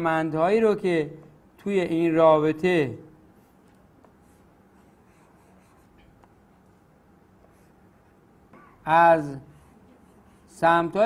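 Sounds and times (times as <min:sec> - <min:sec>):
pen scratching on paper: 0:04.0 - 0:06.3, 0:07.4 - 0:07.8, 0:09.5 - 0:10.6.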